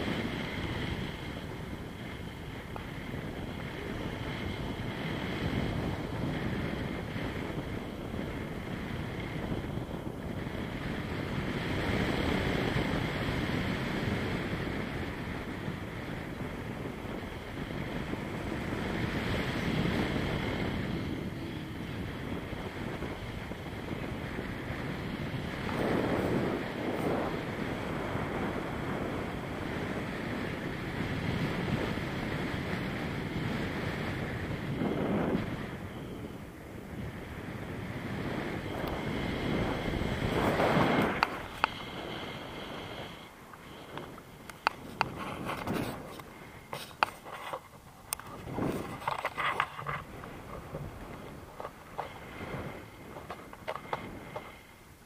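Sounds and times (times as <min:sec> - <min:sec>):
wind rushing over microphone: 0:00.0 - 0:55.0.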